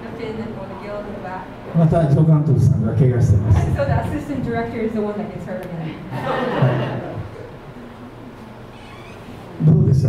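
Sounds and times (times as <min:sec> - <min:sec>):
audience murmuring: 0:03.6 - 0:09.6
audience laughing softly: 0:05.9 - 0:07.6.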